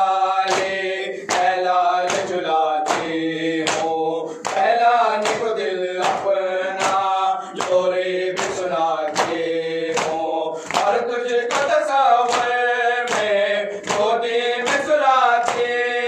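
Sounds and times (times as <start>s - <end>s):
man chanting into a microphone: 0.0s - 16.0s
men chanting in unison: 0.0s - 16.0s
rhythmic chest-beating slaps: 0.0s - 16.0s.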